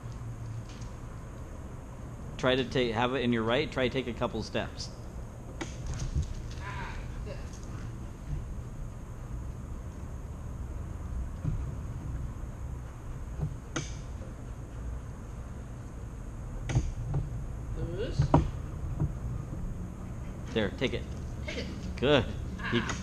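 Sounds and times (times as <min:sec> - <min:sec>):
low room hum: 0:00.0 - 0:23.0.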